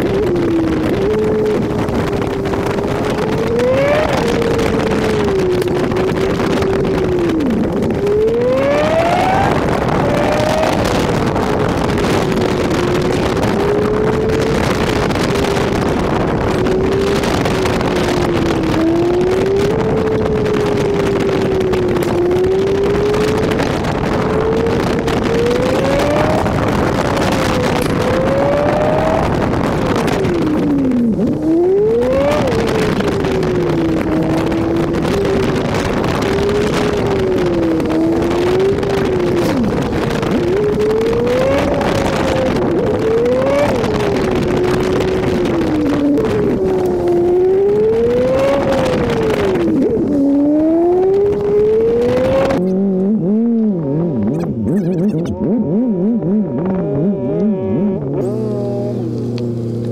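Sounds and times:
car engine revving: 0:00.0 - 0:59.9
wind and road noise: 0:00.0 - 0:59.9.

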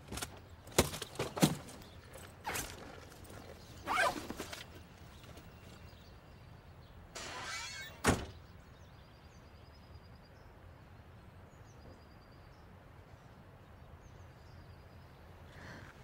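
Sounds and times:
solid thunk: 0:08.0 - 0:08.4.

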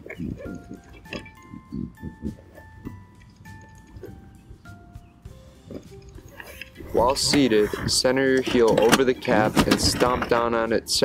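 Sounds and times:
soft low pulses: 0:00.0 - 0:05.3
light melody of held notes: 0:00.0 - 0:09.4.

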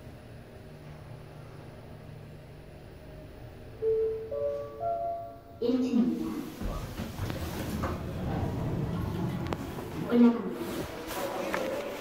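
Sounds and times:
elevator car humming: 0:00.0 - 0:12.0
elevator arrival chime: 0:03.8 - 0:05.8.

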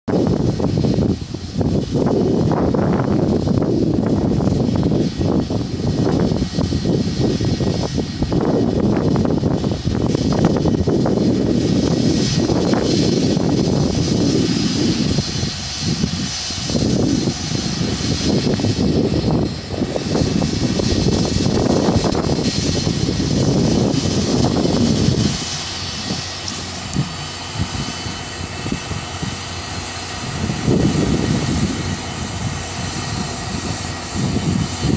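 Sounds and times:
tractor diesel engine rumble: 0:00.1 - 0:34.9.

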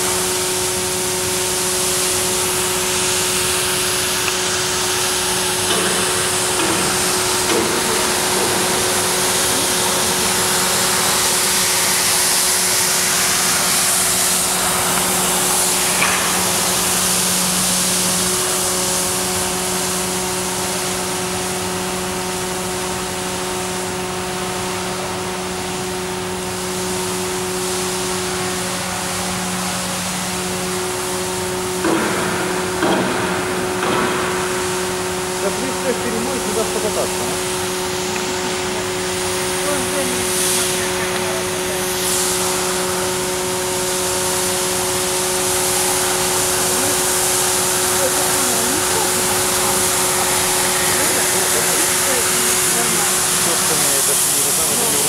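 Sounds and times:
floor scrubber motor hum: 0:00.0 - 0:21.8, 0:25.6 - 0:55.0.

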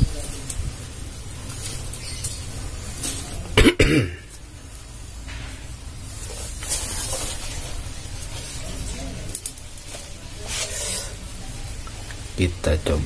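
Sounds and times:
dry roots rustling and scraping: 0:00.0 - 0:03.6, 0:04.2 - 0:13.0.

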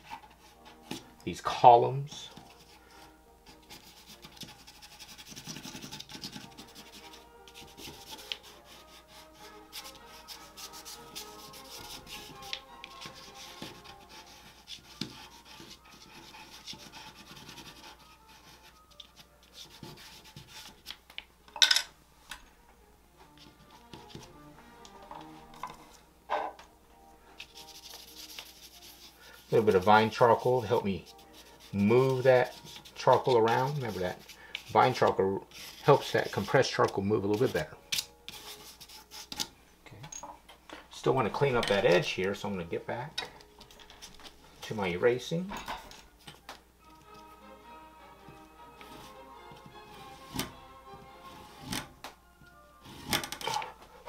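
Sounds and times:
charcoal scratching on paper: 0:02.3 - 0:21.0, 0:23.4 - 0:24.4, 0:27.4 - 0:39.5, 0:48.7 - 0:50.5, 0:51.2 - 0:51.9, 0:52.8 - 0:53.8.

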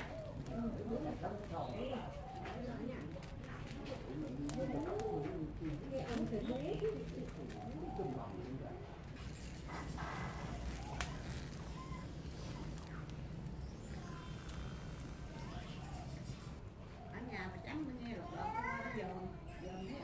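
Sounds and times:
straw fire crackling and popping: 0:00.0 - 0:18.2
indistinct background voices: 0:00.0 - 0:18.5.

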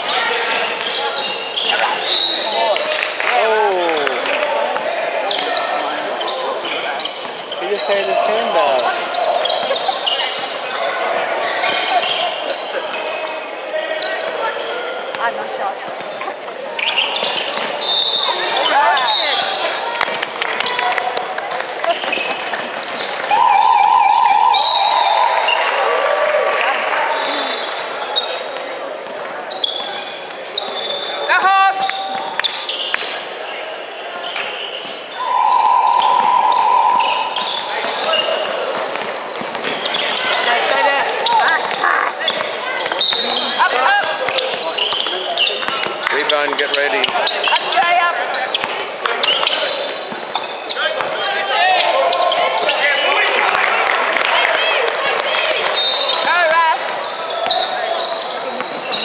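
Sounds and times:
sneakers squeaking: 0:00.0 - 0:03.2, 0:03.9 - 0:25.9, 0:26.6 - 0:53.4, 0:54.6 - 0:59.0
people calling out: 0:21.8 - 0:27.7, 0:35.1 - 0:38.6
basketball bouncing on court: 0:37.3 - 0:43.4, 0:44.0 - 0:47.7.

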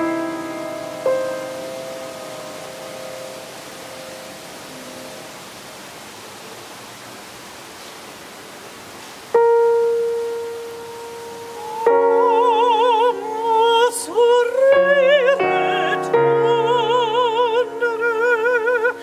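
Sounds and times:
piano chords: 0:00.0 - 0:05.7, 0:09.3 - 0:19.0
steady hiss: 0:00.0 - 0:19.0.

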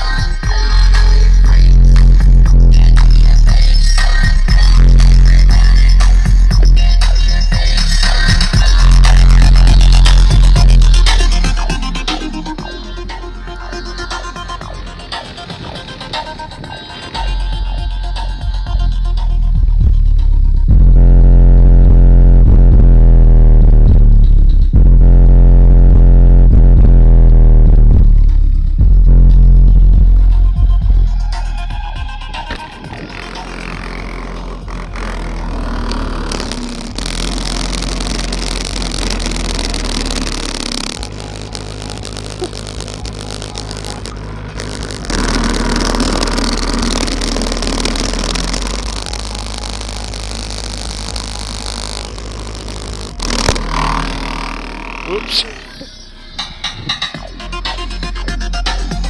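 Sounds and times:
bass-heavy electronic music: 0:00.0 - 0:59.0.

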